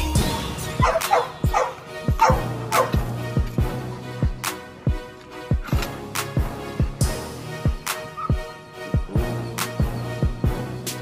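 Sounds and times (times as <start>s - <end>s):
hip hop music: 0.0s - 11.0s
young dog yipping: 0.8s - 3.0s.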